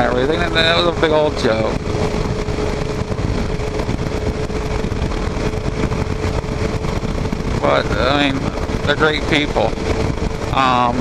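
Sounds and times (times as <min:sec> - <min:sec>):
motorcycle engine cruising: 0:00.0 - 0:11.0
wind rush on microphone: 0:00.0 - 0:11.0.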